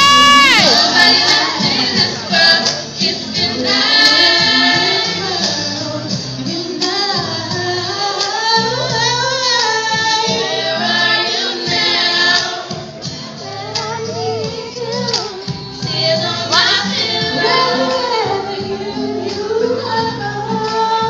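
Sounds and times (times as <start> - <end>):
high voices singing: 0.0 - 21.0.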